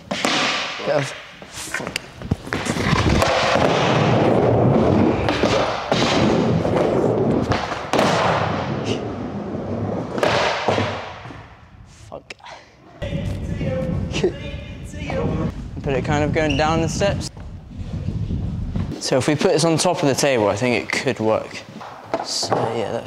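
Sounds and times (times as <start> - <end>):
skateboard wheels rolling: 2.2 - 11.5
skateboard thuds and knocks: 2.4 - 8.6, 10.1 - 11.4.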